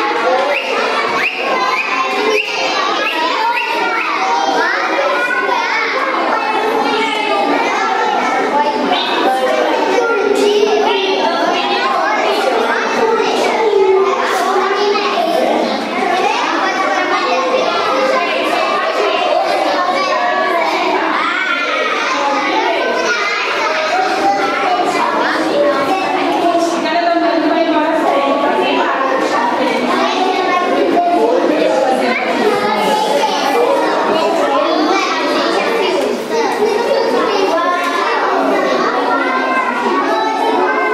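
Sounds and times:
children chattering and calling out: 0.0 - 40.9.

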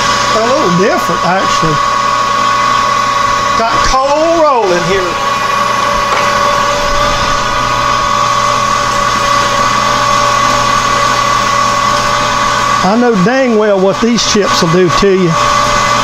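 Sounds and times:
lathe drive whine: 0.0 - 16.0
metal lathe cutting steel: 0.0 - 16.0.

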